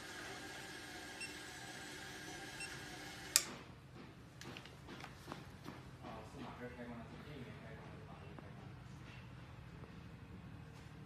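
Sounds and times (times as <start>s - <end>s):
conveyor belt hum and whine: 0.0s - 11.0s
sharp mechanical click: 3.3s - 3.6s.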